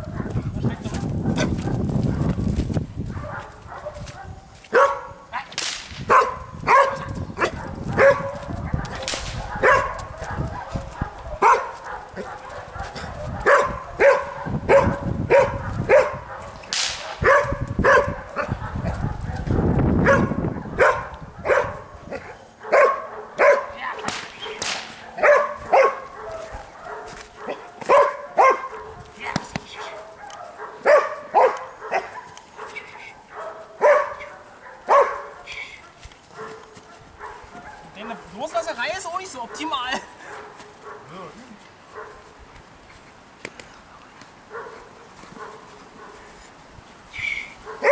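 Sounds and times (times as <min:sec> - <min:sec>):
dog barking sharply: 0:03.2 - 0:05.2, 0:06.1 - 0:37.9, 0:47.6 - 0:47.9.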